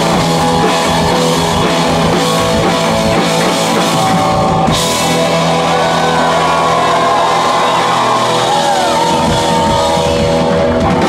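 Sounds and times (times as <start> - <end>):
distorted electric guitars and bass: 0.0 - 11.0.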